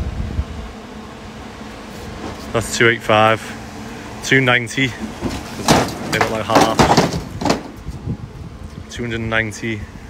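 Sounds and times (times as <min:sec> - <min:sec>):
bricks clattering: 0:05.1 - 0:07.9.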